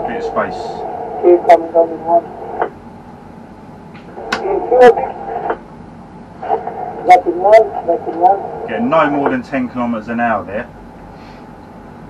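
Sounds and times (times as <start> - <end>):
man speaking: 0.0 - 0.8, 8.7 - 10.7
low steady hum: 0.0 - 12.0.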